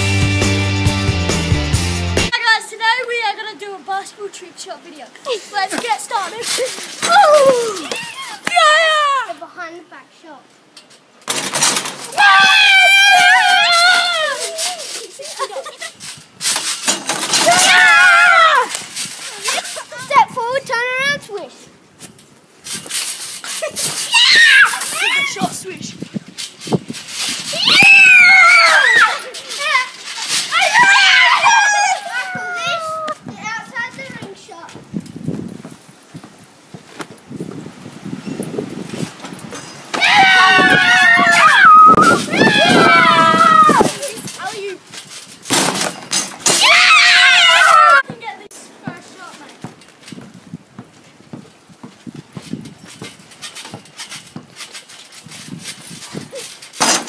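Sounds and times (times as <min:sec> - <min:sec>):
child's high-pitched shout: 0:05.3 - 0:09.6, 0:12.1 - 0:15.7, 0:17.4 - 0:21.2, 0:24.0 - 0:25.8, 0:27.5 - 0:34.7, 0:40.0 - 0:44.8, 0:46.6 - 0:48.5
children shouting: 0:07.0 - 0:09.3, 0:12.1 - 0:15.5, 0:17.3 - 0:18.8, 0:24.1 - 0:25.5, 0:27.5 - 0:33.3, 0:39.9 - 0:44.2, 0:46.5 - 0:48.2
basketball dribbled on dirt: 0:48.0 - 0:54.5.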